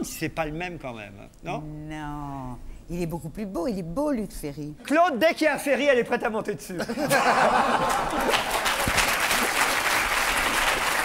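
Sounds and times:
audience applauding: 7.6 - 11.0.

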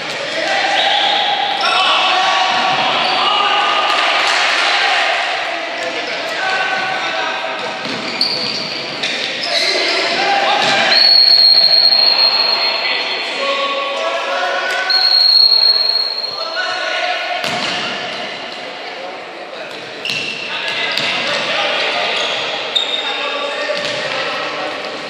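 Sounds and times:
shoes squeaking on court floor: 7.8 - 10.1, 19.7 - 21.2, 22.0 - 23.2
referee's whistle blast: 10.8 - 13.2, 14.9 - 16.5.

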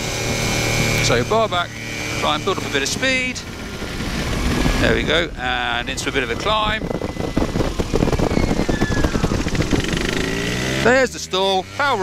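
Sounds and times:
faint engine whine: 0.0 - 12.0
wind buffeting microphone: 1.8 - 10.6.

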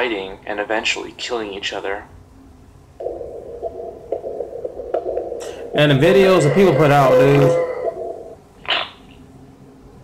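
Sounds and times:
eerie droning hum: 2.3 - 9.3.

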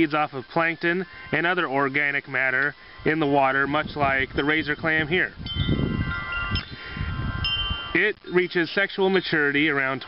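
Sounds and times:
wind rumble on microphone: 3.0 - 8.0
chimes ringing: 5.5 - 8.5.

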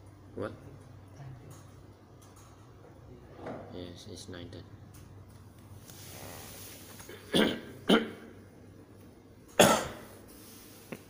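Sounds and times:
person coughing: 7.1 - 8.3, 9.6 - 10.1.

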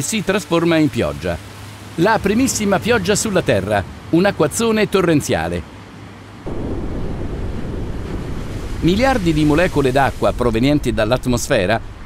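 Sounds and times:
torrential rain: 0.0 - 12.0
rushing wind: 5.7 - 12.0.

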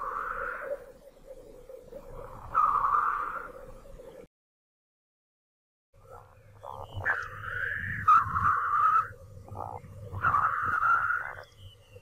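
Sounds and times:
drawn-out animal calls: 6.1 - 11.5.

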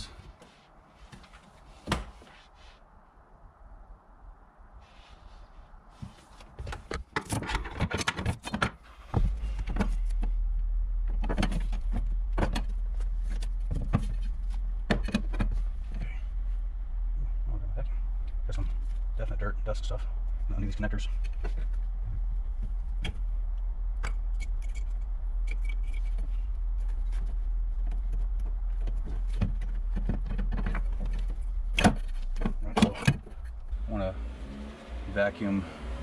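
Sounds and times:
steady low hum: 9.1 - 35.3.

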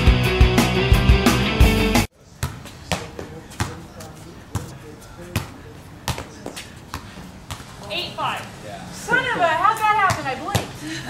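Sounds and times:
music: 0.0 - 2.1
ball bouncing and being hit: 2.4 - 7.7, 10.0 - 10.8.

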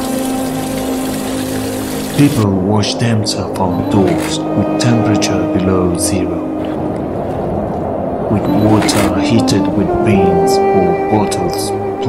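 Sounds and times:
low held music tone: 0.0 - 12.0.

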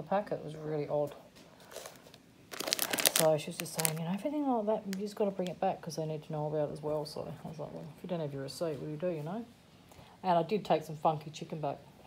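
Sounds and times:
plastic bag crinkling: 1.6 - 4.2.

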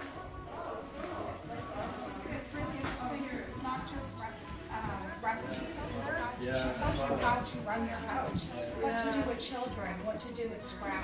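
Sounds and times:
background music: 0.0 - 11.0
woman talking: 2.0 - 11.0.

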